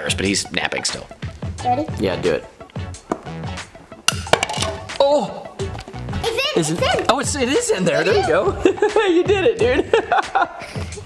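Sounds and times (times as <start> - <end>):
marble dropping into plastic cup: 4.1 - 4.9.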